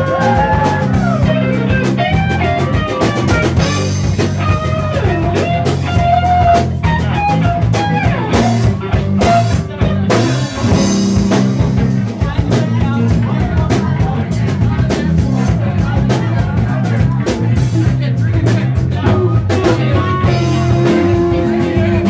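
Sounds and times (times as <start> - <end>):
electric guitar lead: 0.0 - 15.6, 16.4 - 22.0
bass: 0.0 - 22.0
drum kit: 0.0 - 22.0.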